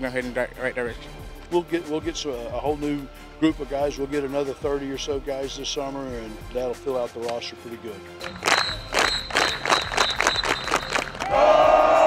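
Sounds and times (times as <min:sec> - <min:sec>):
team clapping in unison: 0:08.2 - 0:11.7
group yelling together: 0:11.2 - 0:12.0.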